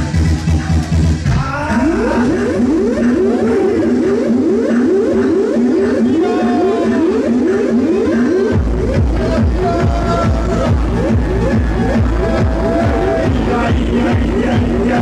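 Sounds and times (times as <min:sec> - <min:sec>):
fast repeating synth riff: 0:00.0 - 0:15.0
kick drum beat: 0:08.6 - 0:15.0.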